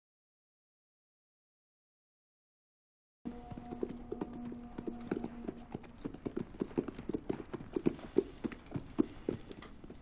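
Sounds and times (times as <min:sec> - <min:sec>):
horse hooves clopping: 0:03.3 - 0:10.0.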